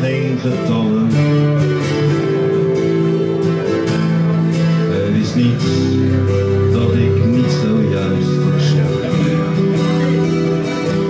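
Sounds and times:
acoustic guitar strumming: 0:00.0 - 0:11.0
electric guitar melody: 0:00.0 - 0:11.0.

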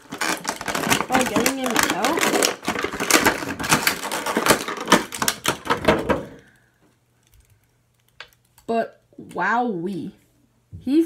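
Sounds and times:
plastic packaging crackling: 0:00.0 - 0:06.6.

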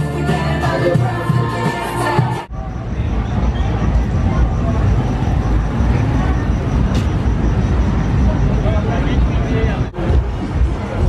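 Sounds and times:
people talking: 0:00.0 - 0:11.0
traffic rumble: 0:02.5 - 0:11.0.

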